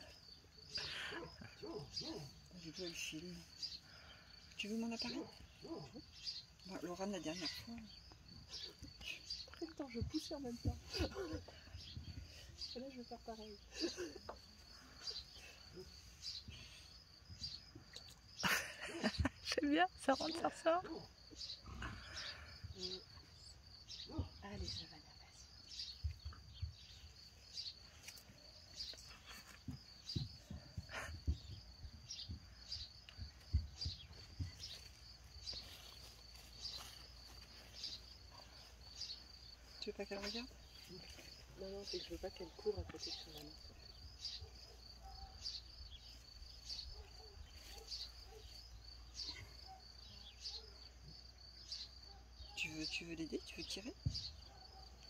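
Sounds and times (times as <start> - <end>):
crickets trilling: 0.0 - 55.0
insect chirping: 0.0 - 55.0.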